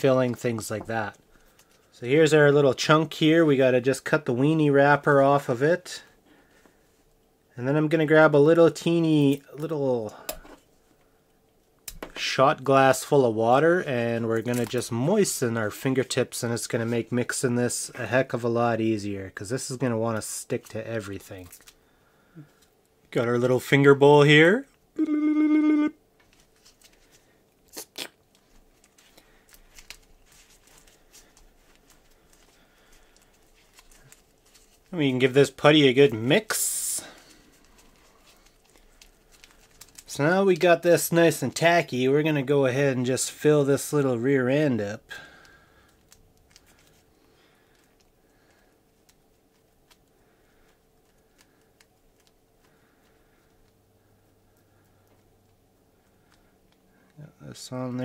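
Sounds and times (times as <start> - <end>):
faint steady hum: 0.0 - 58.0
person humming a note: 25.0 - 26.0.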